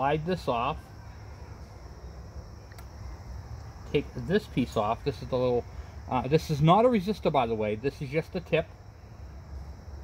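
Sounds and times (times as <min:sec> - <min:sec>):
faint click: 0:02.7 - 0:02.9.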